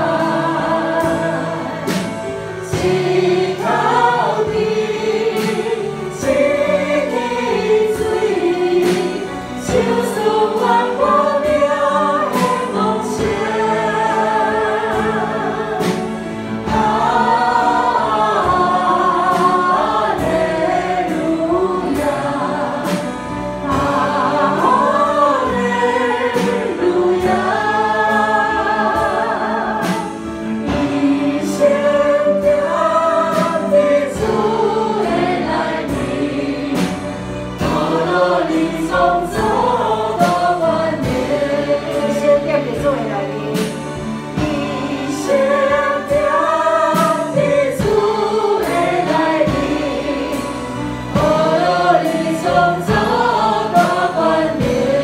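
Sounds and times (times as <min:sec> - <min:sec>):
group singing worship song: 0:00.0 - 0:55.0
instrumental accompaniment: 0:00.0 - 0:55.0.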